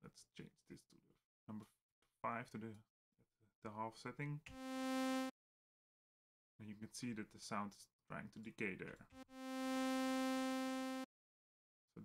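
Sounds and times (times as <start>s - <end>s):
synthesizer held note: 4.5s - 5.3s, 9.2s - 11.1s.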